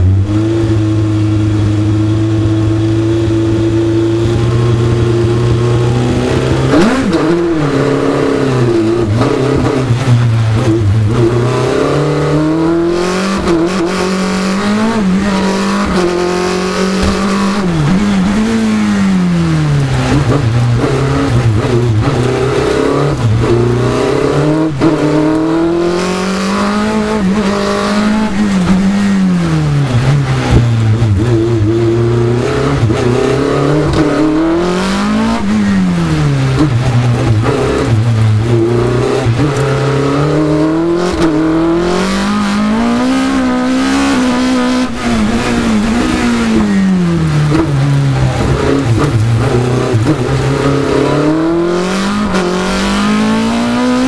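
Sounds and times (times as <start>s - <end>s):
racing car engine revving: 0.0s - 54.0s.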